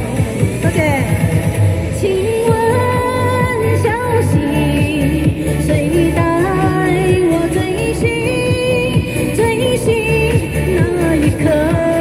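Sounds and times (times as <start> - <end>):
pop backing track with steady beat: 0.0 - 12.0.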